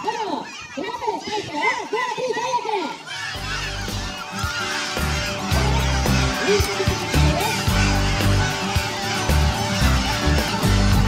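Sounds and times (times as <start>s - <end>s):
background music with bass line: 3.4s - 11.0s.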